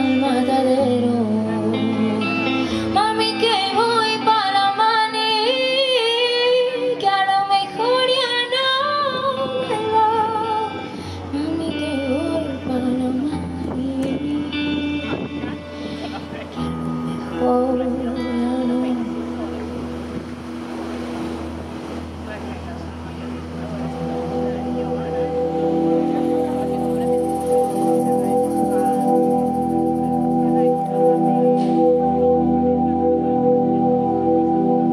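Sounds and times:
woman singing into a microphone: 0:00.0 - 0:19.8.

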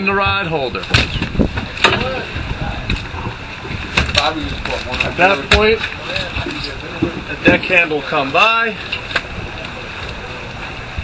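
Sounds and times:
wind buffeting microphone: 0:00.0 - 0:11.0
faint voices: 0:01.6 - 0:11.0.

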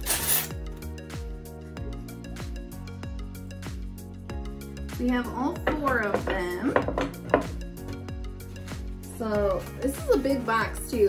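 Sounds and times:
soft background music: 0:00.0 - 0:11.0
knock on a table: 0:05.6 - 0:07.6.

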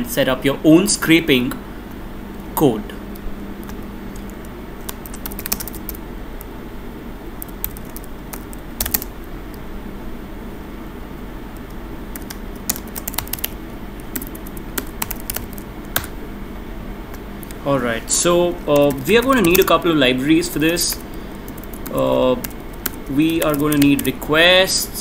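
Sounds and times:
steady low hum: 0:00.0 - 0:25.0
keyboard typing: 0:03.1 - 0:06.5, 0:07.4 - 0:09.2, 0:11.6 - 0:16.1, 0:17.1 - 0:17.6, 0:18.7 - 0:19.8, 0:20.5 - 0:24.2.

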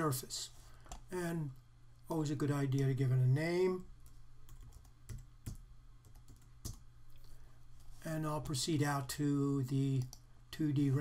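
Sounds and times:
faint keyboard typing: 0:03.8 - 0:08.0, 0:09.8 - 0:10.3.

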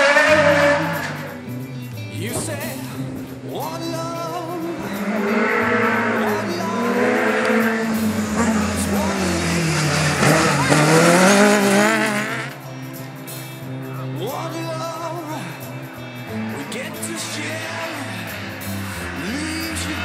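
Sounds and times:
tyre and road noise: 0:00.0 - 0:13.8, 0:14.4 - 0:20.0
pop music with singing: 0:00.0 - 0:20.0
rally car engines revving: 0:00.0 - 0:20.0.

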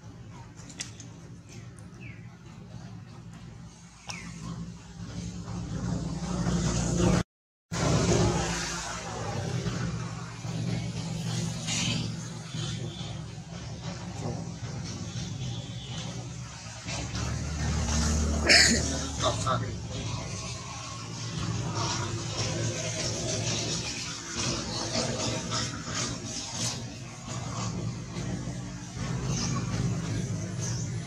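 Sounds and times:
vehicle engine humming: 0:00.0 - 0:31.0.

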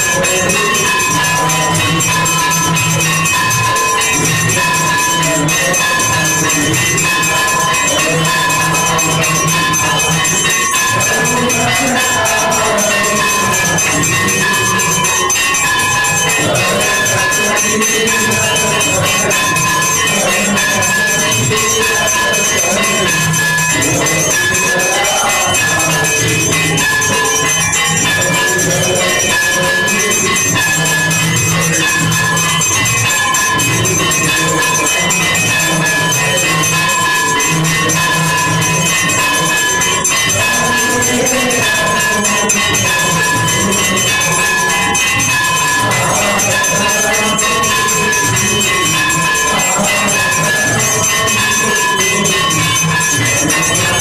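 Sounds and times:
brass bells and cymbals clanging: 0:00.0 - 0:54.0.

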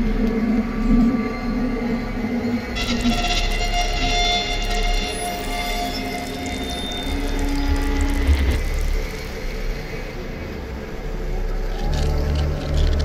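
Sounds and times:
horror film score drones: 0:00.0 - 0:13.0.

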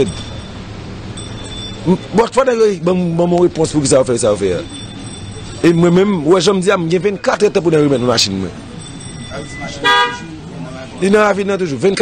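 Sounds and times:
vehicle horn toot: 0:09.5 - 0:10.4.

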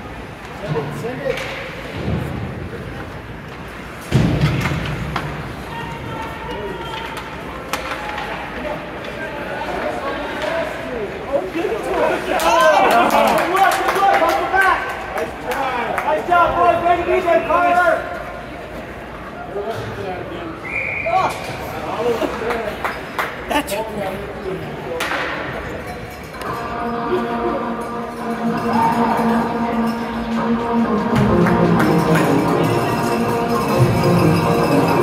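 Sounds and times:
sticks and pucks clacking on ice: 0:00.4 - 0:02.1, 0:06.2 - 0:10.5.

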